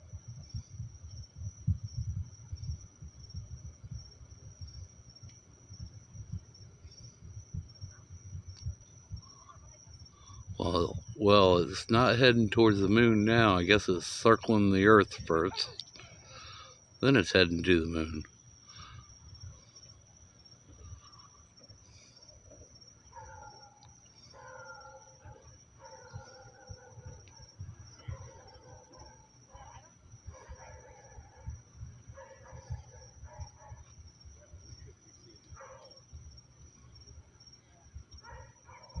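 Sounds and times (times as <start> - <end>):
steady high-pitched whine: 0.0 - 39.0.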